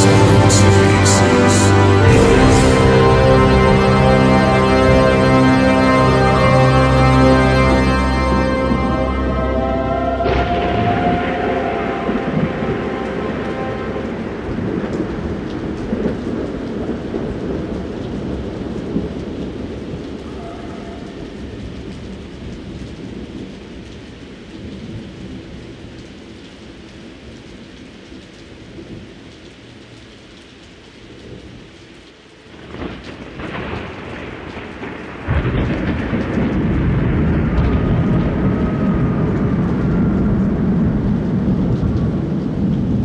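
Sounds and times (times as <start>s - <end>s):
held organ chord: 0.0s - 15.4s
rolling thunder: 0.0s - 21.3s, 32.6s - 43.0s
steady rain: 0.0s - 43.0s.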